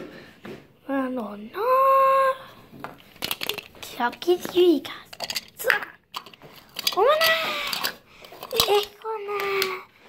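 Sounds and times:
plastic capsule clicks: 2.9 - 9.8.

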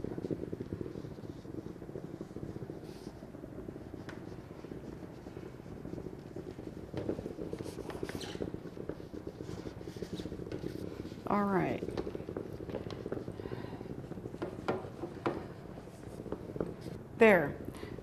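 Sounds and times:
garment steamer buzzing: 0.0 - 18.0.

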